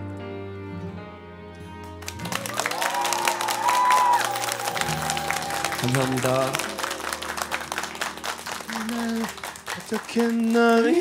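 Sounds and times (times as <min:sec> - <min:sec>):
ballad backing music: 0:00.0 - 0:11.0
audience clapping and cheering: 0:01.8 - 0:11.0.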